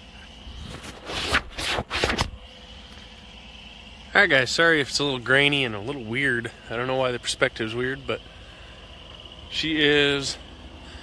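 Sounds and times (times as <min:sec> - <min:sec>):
steady low hum: 0:00.0 - 0:11.0
scraping rustling bursts: 0:00.6 - 0:02.4.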